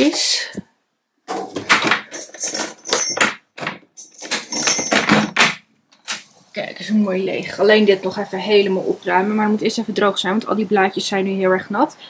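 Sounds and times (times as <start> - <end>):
keys rattling in a lock: 1.7 - 5.6.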